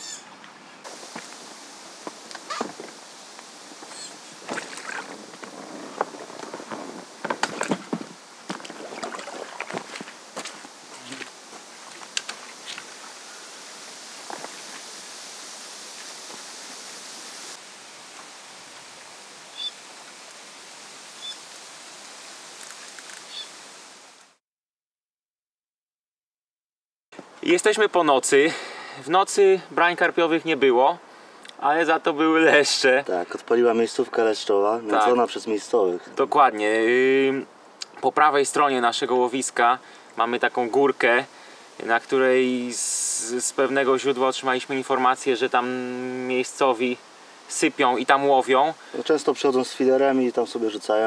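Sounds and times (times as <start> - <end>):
outdoor hiss: 0.0 - 24.4, 27.2 - 51.0
knocks and splashes: 3.8 - 12.9.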